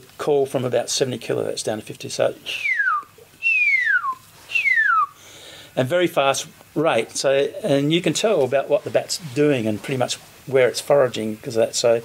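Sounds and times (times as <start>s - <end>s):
man whistling downward-sliding notes: 2.6s - 5.2s.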